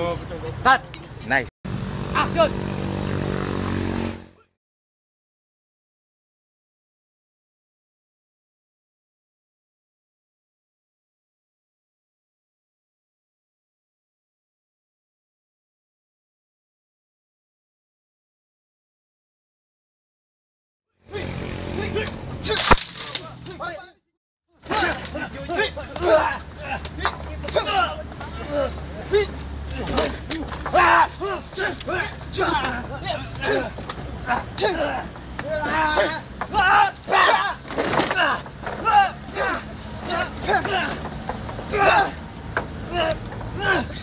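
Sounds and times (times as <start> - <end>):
voices: 0.0 - 4.3, 21.0 - 44.0
punch crack: 22.5 - 23.4.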